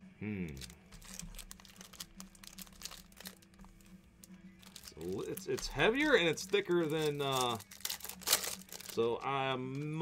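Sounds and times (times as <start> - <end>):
foil wrappers crinkling: 0.5 - 9.3.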